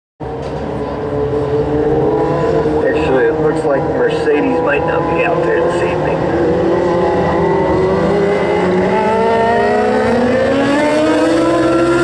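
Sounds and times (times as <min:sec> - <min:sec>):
race car engines droning: 0:00.2 - 0:12.0.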